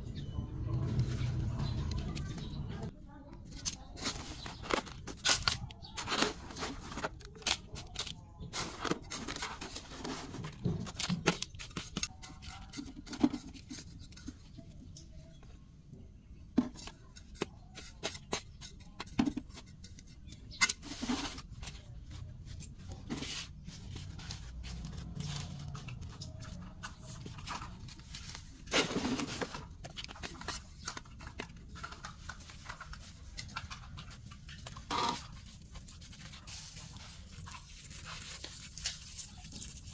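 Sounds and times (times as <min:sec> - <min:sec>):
hands working potting soil: 0:00.6 - 0:15.4, 0:16.0 - 0:39.9
plastic plant pot handled: 0:16.6 - 0:39.9.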